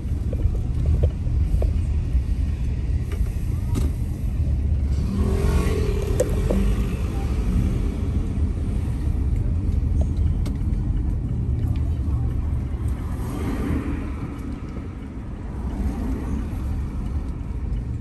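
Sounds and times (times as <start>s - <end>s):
car driving slowly: 0.0s - 18.0s.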